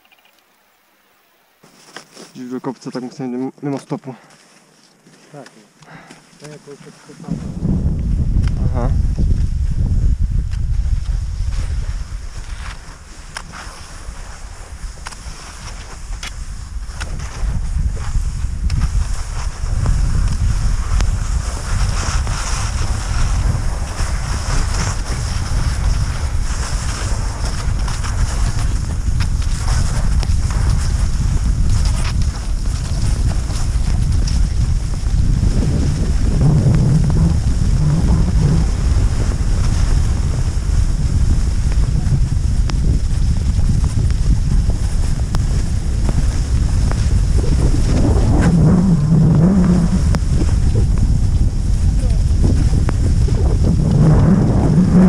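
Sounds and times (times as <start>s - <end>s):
skis gliding on snow: 1.6s - 3.5s, 4.3s - 55.0s
wind buffeting microphone: 7.2s - 55.0s.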